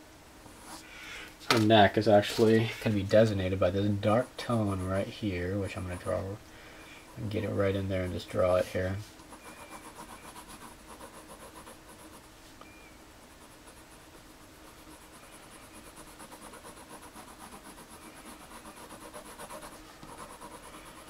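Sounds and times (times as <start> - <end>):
pencil scratching on paper: 4.2 - 6.3, 9.3 - 12.2, 13.4 - 21.0.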